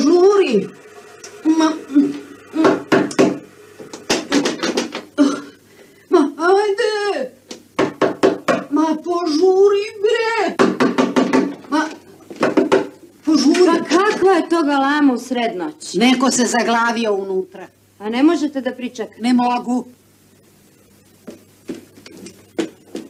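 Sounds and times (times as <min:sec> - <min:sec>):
sharp knocks: 0:07.8 - 0:08.7, 0:10.6 - 0:11.6, 0:12.4 - 0:13.0.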